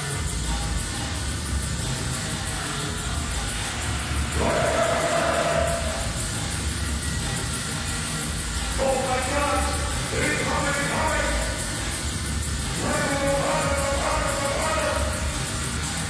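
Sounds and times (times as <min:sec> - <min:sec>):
drum and bass music: 0:00.0 - 0:16.0
held high synth note: 0:04.3 - 0:06.6.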